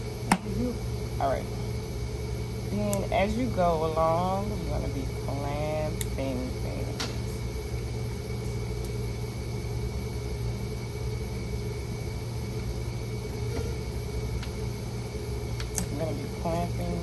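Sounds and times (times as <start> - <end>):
low machine hum: 0.0 - 17.0.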